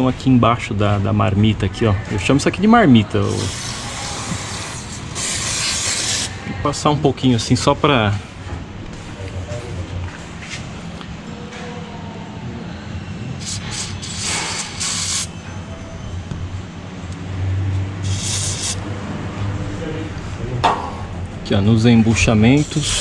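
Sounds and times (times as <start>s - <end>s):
aerosol spray hissing: 13.4s - 15.3s, 18.0s - 18.8s.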